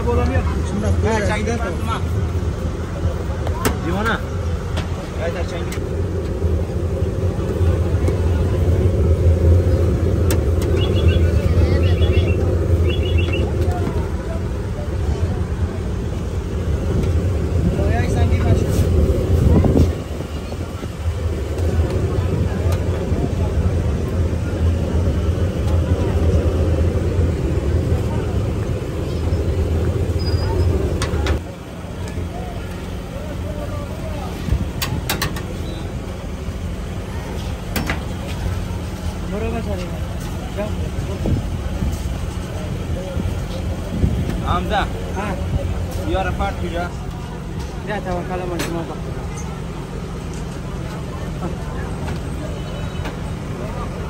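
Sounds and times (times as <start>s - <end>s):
traffic rumble: 0.0s - 54.0s
voices: 0.0s - 54.0s.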